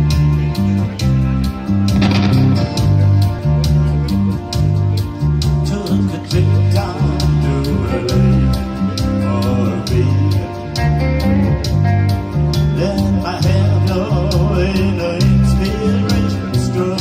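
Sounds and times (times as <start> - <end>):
bass guitar line: 0.0 - 17.0
electric guitar: 0.0 - 17.0
keyboard: 0.0 - 17.0
steady beat: 2.0 - 4.9.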